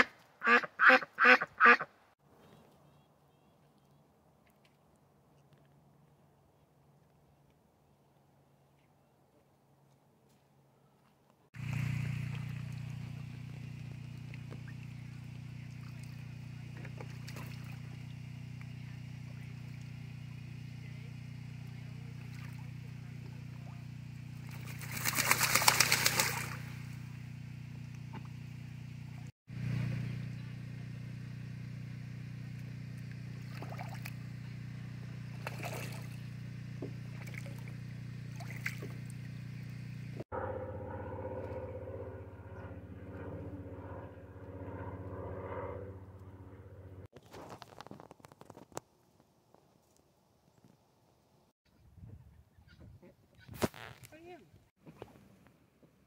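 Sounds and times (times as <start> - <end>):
ducks splashing in water: 11.6 - 19.9, 22.1 - 27.0, 33.4 - 34.2, 35.3 - 36.2, 37.1 - 39.3.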